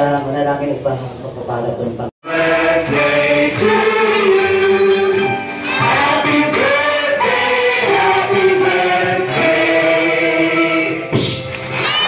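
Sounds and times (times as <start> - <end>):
group of voices singing: 2.2 - 11.3.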